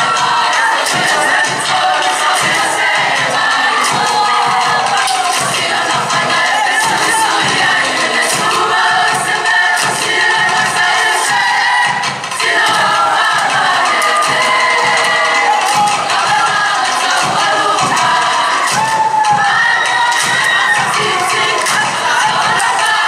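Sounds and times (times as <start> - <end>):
crowd cheering and shouting: 0.0 - 23.0
group singing together: 0.0 - 23.0
rhythmic clapping: 0.0 - 23.0.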